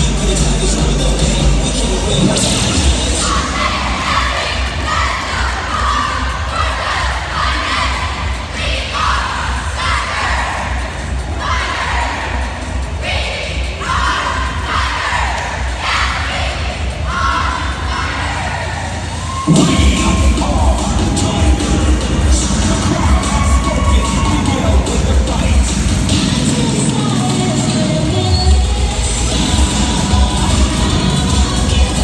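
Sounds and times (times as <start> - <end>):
crowd noise: 0.0 - 32.0
cheerleaders shouting in unison: 3.0 - 32.0.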